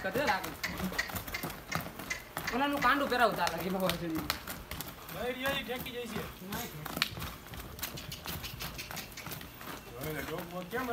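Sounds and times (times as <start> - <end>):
horse hooves on dry dirt: 0.0 - 10.9.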